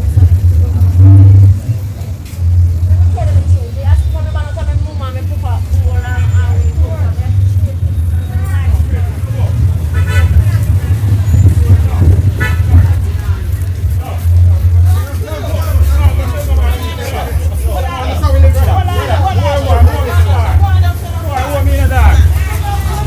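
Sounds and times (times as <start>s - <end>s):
loud low rumble: 0.0s - 23.0s
passing traffic: 0.0s - 23.0s
people's voices: 0.0s - 23.0s.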